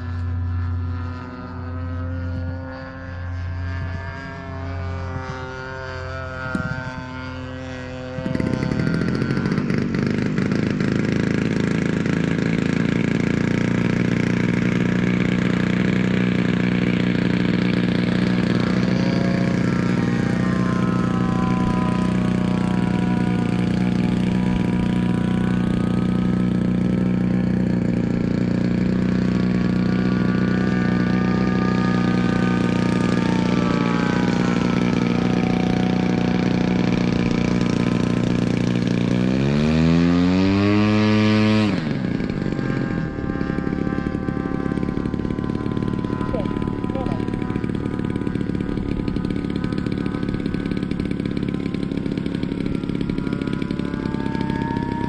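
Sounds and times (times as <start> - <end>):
piston engine running steadily: 0.0 - 55.0
propeller aircraft flying overhead: 0.0 - 55.0.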